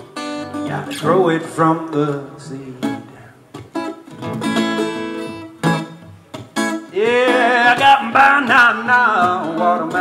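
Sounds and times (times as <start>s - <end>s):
acoustic guitar strumming: 0.0s - 10.0s
man singing: 0.5s - 3.4s, 6.9s - 10.0s.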